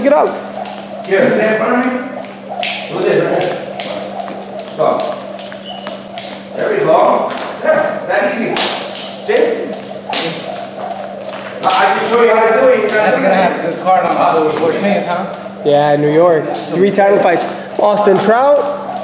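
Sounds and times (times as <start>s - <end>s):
jump rope slapping floor: 0.0s - 19.0s.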